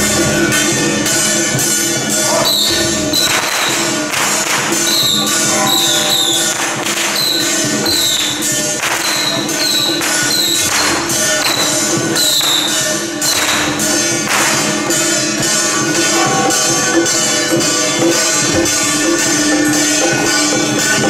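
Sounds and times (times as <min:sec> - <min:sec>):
hand cymbals clashing: 0:00.0 - 0:21.0.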